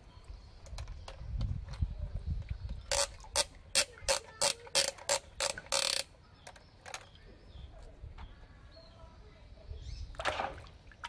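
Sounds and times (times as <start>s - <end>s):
plastic ratchet clicking: 2.9s - 7.1s.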